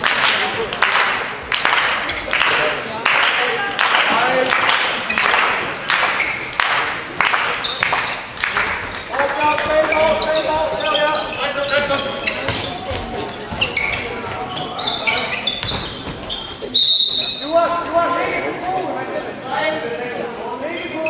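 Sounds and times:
shoes squeaking: 0:02.0 - 0:02.4, 0:05.0 - 0:06.6, 0:07.6 - 0:18.8, 0:20.6 - 0:21.0
ball bouncing on floor: 0:15.6 - 0:16.3
referee's whistle blast: 0:16.8 - 0:17.5.

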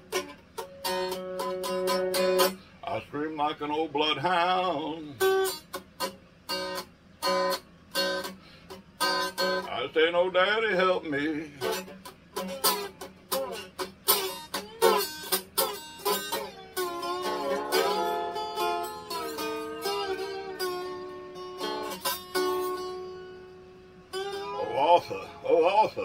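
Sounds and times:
ukulele strumming: 0:00.0 - 0:02.6, 0:11.4 - 0:26.0.

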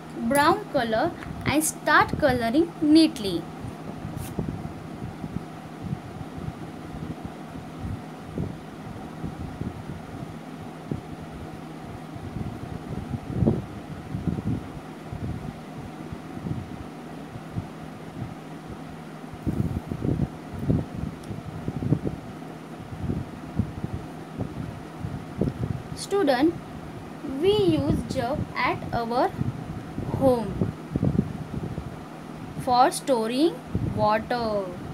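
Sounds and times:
low room hum: 0:00.0 - 0:34.9.

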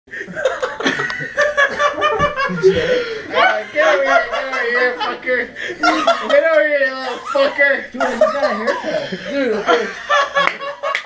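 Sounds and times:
people laughing: 0:00.1 - 0:11.0
voices talking: 0:01.8 - 0:10.7.

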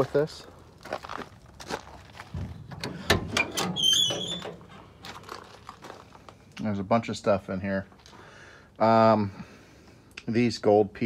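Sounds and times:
van door clunk: 0:02.2 - 0:04.9
door high squeak: 0:03.0 - 0:04.7.

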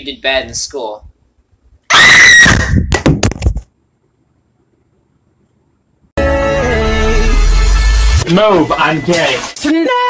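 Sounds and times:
person screaming: 0:01.9 - 0:02.6.

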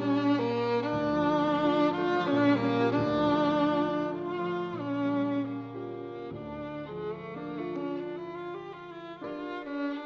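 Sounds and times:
piano accompaniment: 0:00.0 - 0:10.0
violin melody with vibrato: 0:00.0 - 0:10.0.

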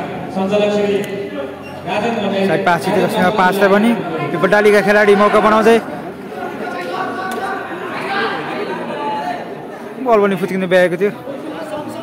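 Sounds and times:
overlapping voices chattering: 0:00.0 - 0:12.0.

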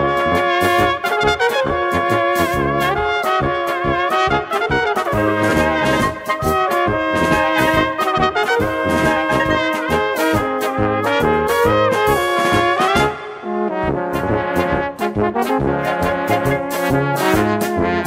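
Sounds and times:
brass band playing a polka: 0:00.0 - 0:18.0.

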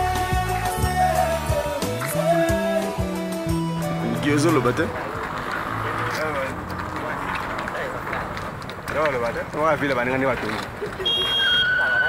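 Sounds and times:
traffic hum: 0:00.0 - 0:12.0
faint voices talking: 0:04.0 - 0:10.7.

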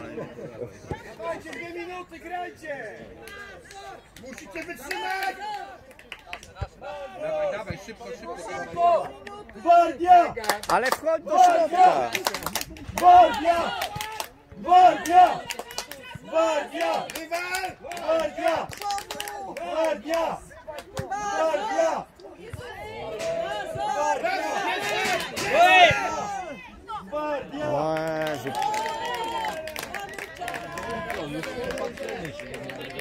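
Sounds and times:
people shouting and calling out: 0:06.6 - 0:33.0.

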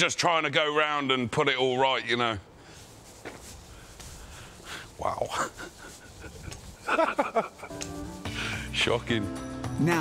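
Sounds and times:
outdoor background noise: 0:00.0 - 0:10.0
faint footsteps on pavement: 0:02.5 - 0:08.7.

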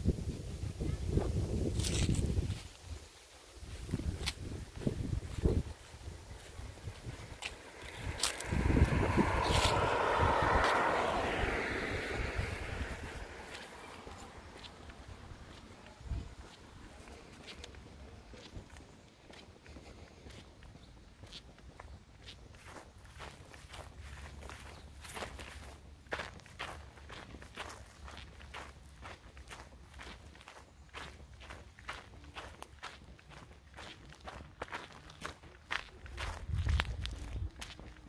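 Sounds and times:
footsteps on asphalt: 0:01.7 - 0:38.0
low rumble: 0:03.9 - 0:17.0.

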